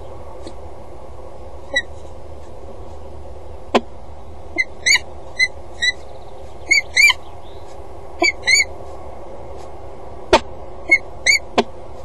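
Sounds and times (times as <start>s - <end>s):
steady low hum: 0.0s - 12.0s
falcon call notes: 8.2s - 8.7s.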